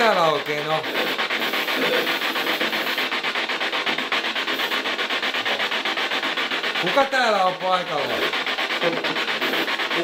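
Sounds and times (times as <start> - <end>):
pulsing rasping static: 0.0 - 10.0.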